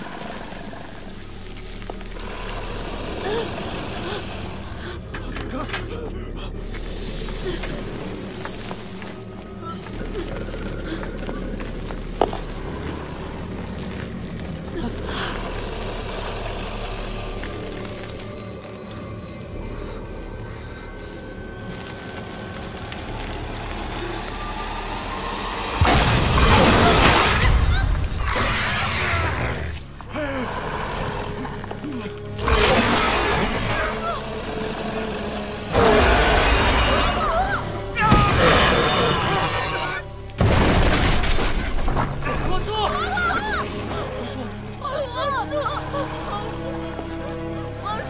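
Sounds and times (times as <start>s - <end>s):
low steady drone: 0.0s - 40.8s
tense film score: 0.0s - 48.0s.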